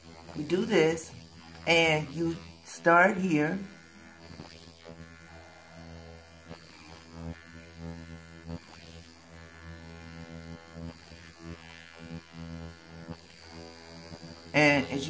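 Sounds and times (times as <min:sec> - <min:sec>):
skin scrubber electric hum: 0:00.0 - 0:15.0.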